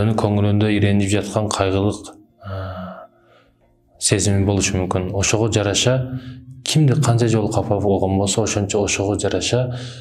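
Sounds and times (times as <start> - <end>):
man breathing: 2.4 - 3.8.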